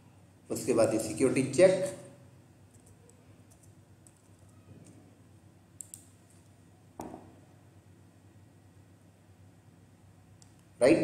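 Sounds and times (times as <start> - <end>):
computer keyboard keystrokes: 2.7 - 5.0, 5.8 - 6.1.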